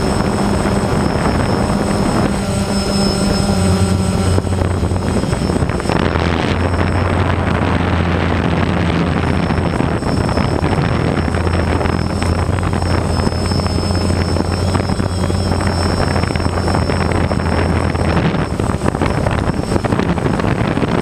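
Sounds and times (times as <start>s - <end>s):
drone propellers humming: 0.0s - 21.0s
high motor whine: 0.0s - 21.0s.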